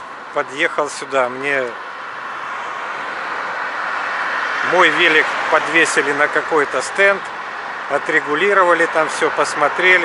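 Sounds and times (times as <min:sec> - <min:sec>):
passing motor vehicle: 0:00.0 - 0:10.0.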